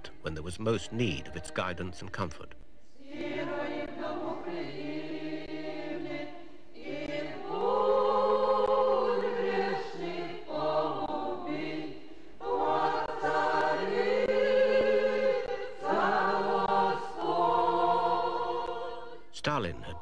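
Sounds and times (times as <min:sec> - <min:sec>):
women's choir chanting unaccompanied: 0:02.9 - 0:19.3.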